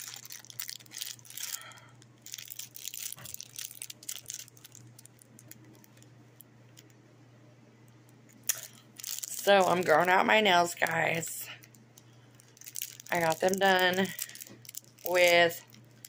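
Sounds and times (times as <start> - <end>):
plastic wrapper crinkling: 0.0 - 6.9, 8.3 - 10.2, 10.8 - 16.0
steady low hum: 0.0 - 16.0.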